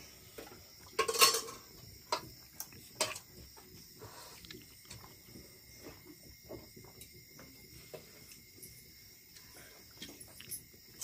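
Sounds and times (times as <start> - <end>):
insects chirring: 0.0 - 11.0.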